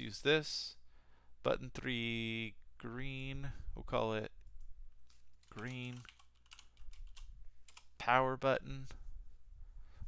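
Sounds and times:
computer keyboard typing: 5.4 - 8.0.

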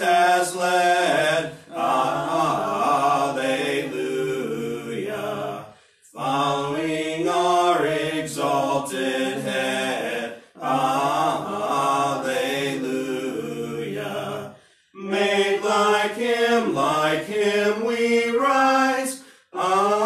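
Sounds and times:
hymn being sung: 0.0 - 20.0.

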